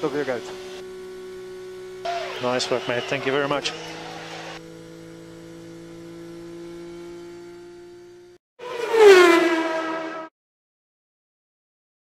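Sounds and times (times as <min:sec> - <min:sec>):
racing car engine droning: 0:00.0 - 0:10.3
racing car fly-by: 0:08.6 - 0:10.3.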